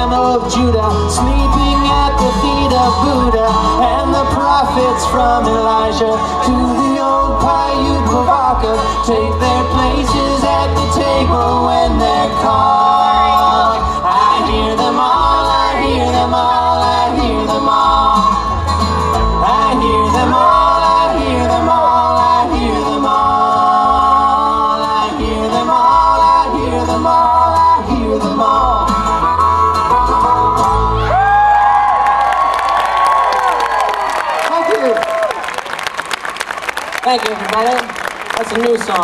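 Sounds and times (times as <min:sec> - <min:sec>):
bluegrass string band playing: 0:00.0 - 0:31.8
crowd clapping: 0:30.6 - 0:39.0.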